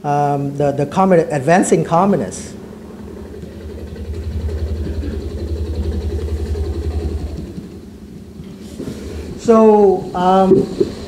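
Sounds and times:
helicopter rotor beating: 1.5s - 11.0s.

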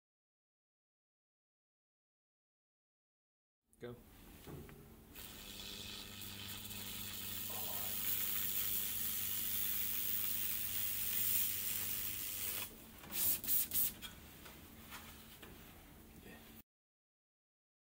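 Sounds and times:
weld cleaner hissing: 5.1s - 14.0s.

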